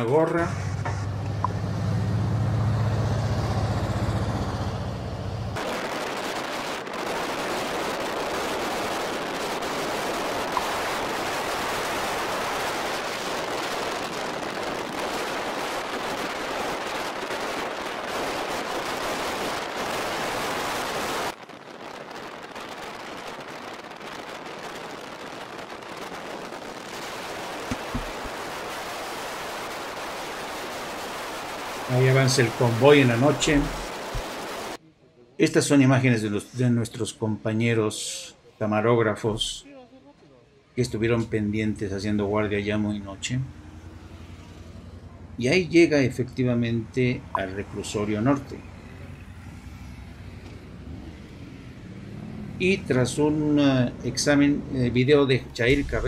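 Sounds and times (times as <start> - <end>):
vehicle engines droning: 0.0 - 5.6, 40.8 - 56.0.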